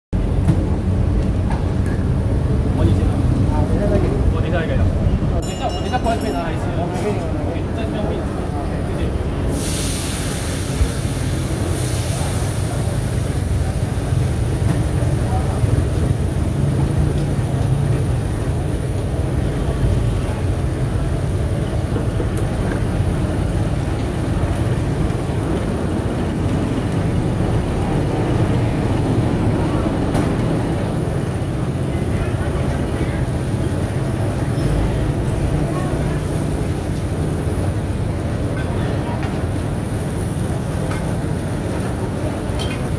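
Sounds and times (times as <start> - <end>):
batter sizzling in hot oil: 9.5 - 16.3.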